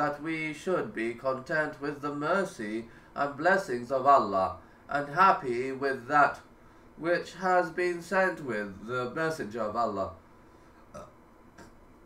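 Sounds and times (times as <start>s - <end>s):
person clearing throat: 10.9s - 11.8s.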